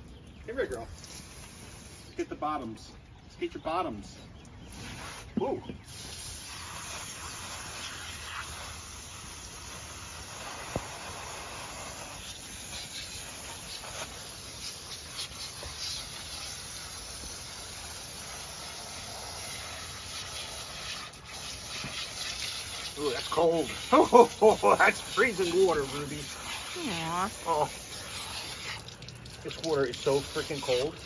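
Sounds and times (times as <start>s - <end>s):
hose water spraying: 0.0s - 2.7s, 4.6s - 31.0s
small water splashes: 20.7s - 31.0s.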